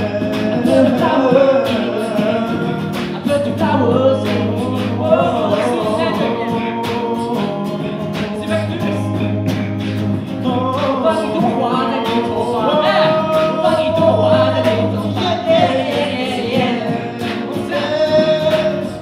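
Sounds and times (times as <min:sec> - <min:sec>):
acoustic guitar: 0:00.0 - 0:19.0
percussive beat: 0:00.0 - 0:19.0
voices singing harmonies: 0:00.0 - 0:19.0.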